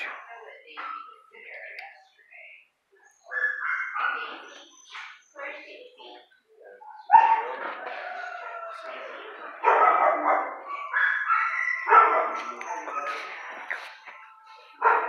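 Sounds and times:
dogs barking: 0:03.2 - 0:04.7, 0:06.8 - 0:14.2, 0:14.8 - 0:15.0.

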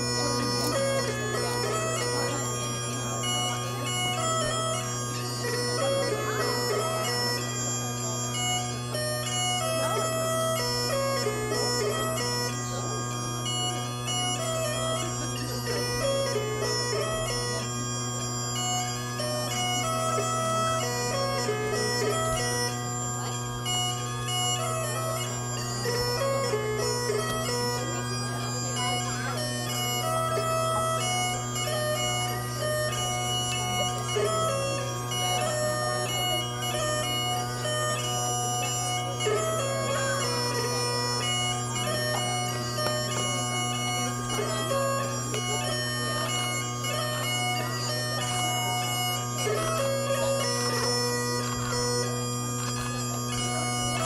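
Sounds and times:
bagpipe chanter melody: 0:00.0 - 0:54.0
bagpipe drones humming: 0:00.0 - 0:54.0.

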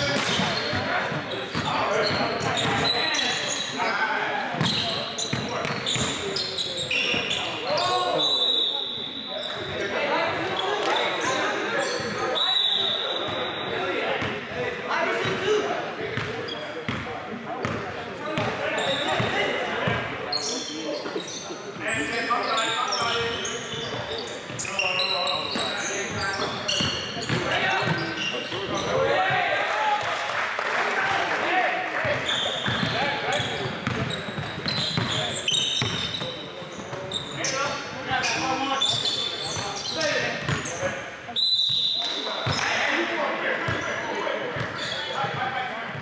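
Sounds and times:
players' voices echoing: 0:00.0 - 0:46.0.

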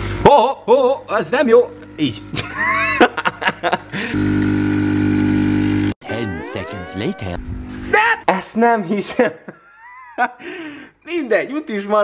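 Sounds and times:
espresso machine pump buzzing: 0:00.0 - 0:07.9
short rising voice-like sound: 0:06.0 - 0:07.9.

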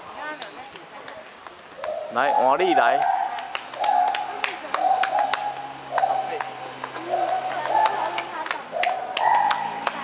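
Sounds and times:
gibbon hooting: 0:01.8 - 0:09.8.

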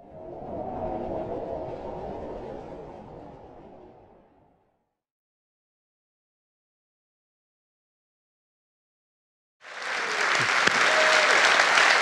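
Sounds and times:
low noisy swell: 0:00.0 - 0:04.6.

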